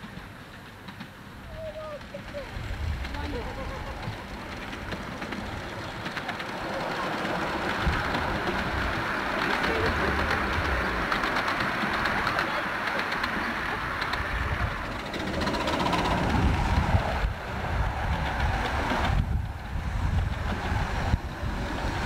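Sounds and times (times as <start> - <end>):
miniature steam train wheels rumbling: 0.0 - 22.0.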